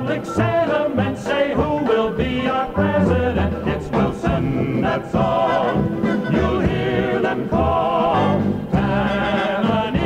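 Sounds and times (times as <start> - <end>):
group of voices singing: 0.0 - 10.0
instrumental accompaniment: 0.0 - 10.0.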